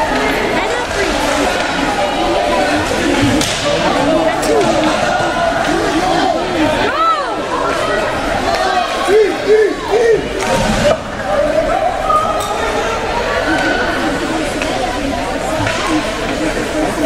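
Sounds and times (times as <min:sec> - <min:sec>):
spectators shouting: 0:00.0 - 0:14.6
crowd chatter: 0:00.0 - 0:17.0.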